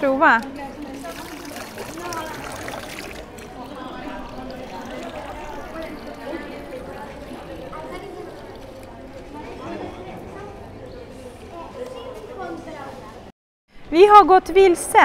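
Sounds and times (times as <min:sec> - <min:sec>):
voices chattering: 0:00.0 - 0:13.3
water splashing into stone basin: 0:00.9 - 0:08.9.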